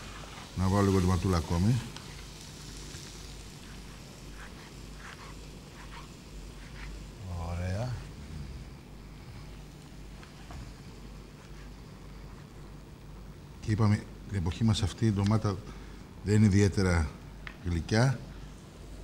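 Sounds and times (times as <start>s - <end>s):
frying pan sizzling: 0.0s - 8.0s.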